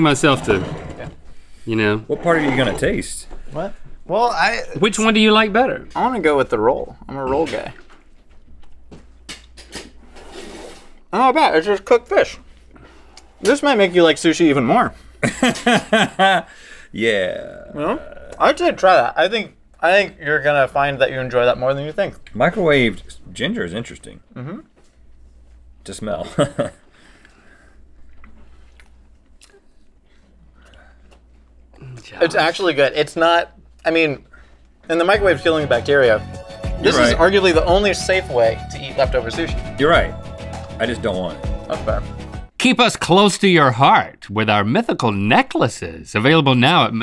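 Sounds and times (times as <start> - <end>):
person chewing: 27.9 - 32.0.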